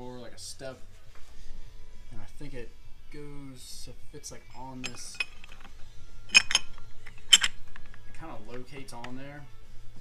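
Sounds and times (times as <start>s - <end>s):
metal parts clinking: 4.6s - 5.7s, 6.3s - 7.6s.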